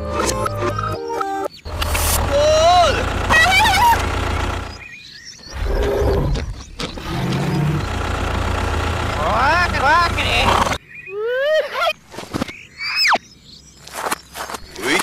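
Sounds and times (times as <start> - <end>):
low engine rumble: 1.7 - 4.9, 6.9 - 10.8.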